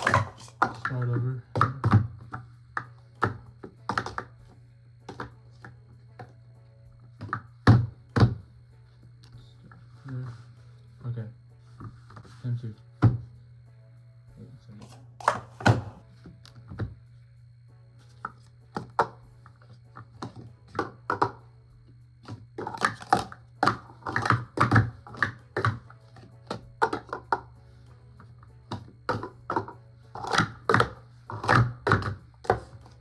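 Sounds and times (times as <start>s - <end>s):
cups knocking on mat: 0.0s - 4.4s, 5.0s - 6.3s, 7.1s - 8.4s, 18.2s - 21.4s, 22.2s - 27.6s, 28.7s - 32.9s
plastic cups clacking: 0.0s - 4.4s, 5.0s - 6.3s, 7.2s - 8.4s, 14.7s - 16.0s, 18.2s - 21.4s, 22.2s - 27.6s, 28.2s - 33.0s
steady low hum: 0.0s - 33.0s.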